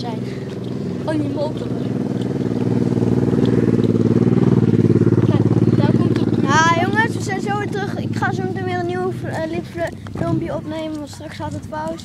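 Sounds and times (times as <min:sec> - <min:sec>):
motorcycle passing by: 0:00.0 - 0:12.0.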